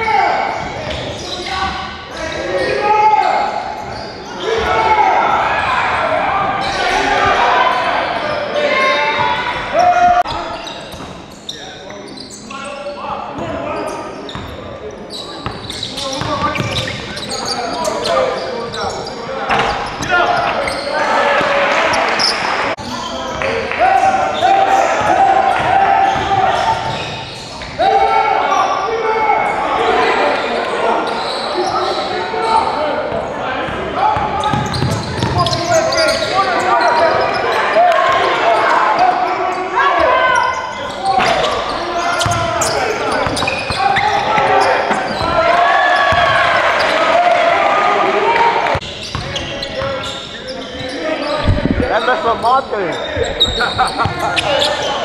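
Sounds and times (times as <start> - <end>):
indistinct voices in gymnasium: 0.0 - 55.0
basketball bouncing on court: 33.7 - 35.7, 48.7 - 49.5.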